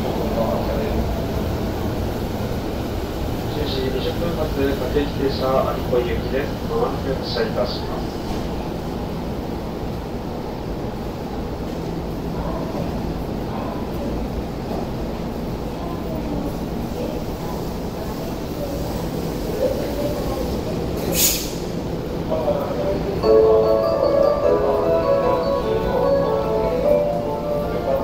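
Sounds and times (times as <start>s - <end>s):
electric train humming: 0.0s - 28.0s
faint voices of people: 12.2s - 28.0s
loud hiss: 21.0s - 21.8s.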